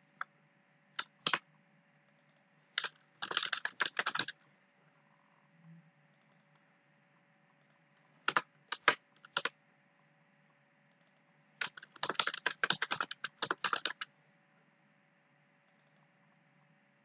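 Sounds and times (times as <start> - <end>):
computer keyboard typing: 1.0 - 1.4, 2.1 - 4.4, 7.6 - 9.5, 10.9 - 14.1, 15.7 - 16.1.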